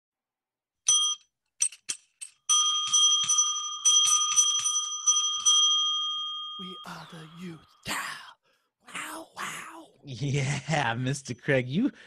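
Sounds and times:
small hand bell ringing: 0.9 - 7.4.

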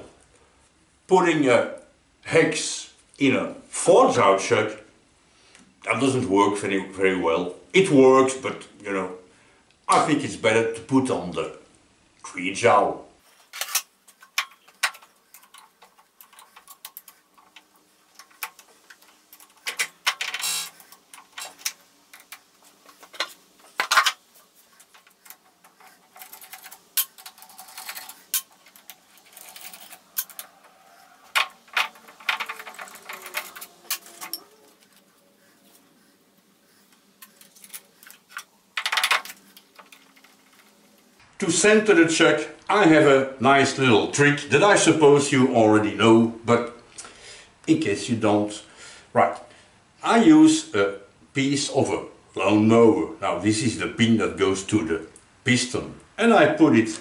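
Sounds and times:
metal clinks and scrapes: 13.2 - 41.1
clattering metal knocks: 14.1 - 34.6.

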